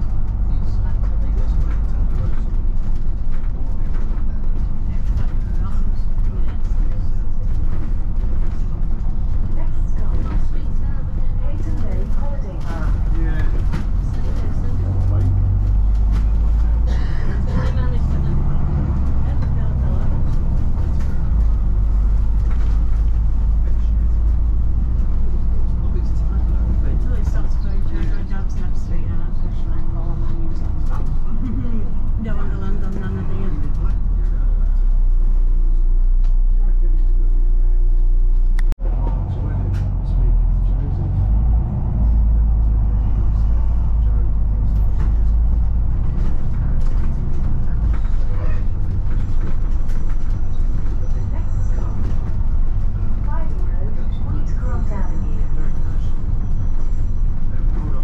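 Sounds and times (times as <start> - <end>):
bus diesel engine rumble: 0.0 - 58.0
road noise: 0.0 - 58.0.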